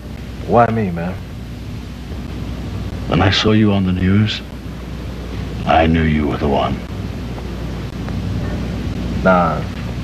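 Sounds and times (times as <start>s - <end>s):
faint hiss: 0.0s - 10.0s
low background rumble: 0.0s - 10.0s.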